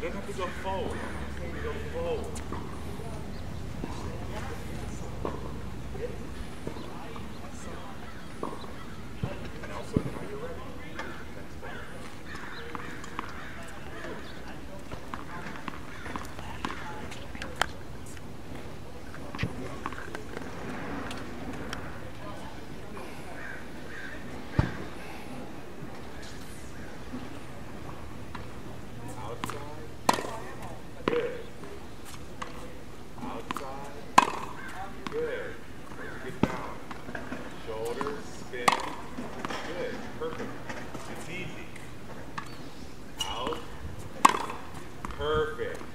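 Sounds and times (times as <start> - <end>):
faint background voices: 0.0 - 45.9
sharp taps on tennis court: 2.2 - 2.8, 12.0 - 21.8, 29.3 - 31.3, 33.4 - 35.2, 36.4 - 41.1, 44.2 - 45.9
tennis racket hitting ball: 29.4 - 31.2, 33.4 - 35.2, 37.8 - 39.2, 44.2 - 45.9.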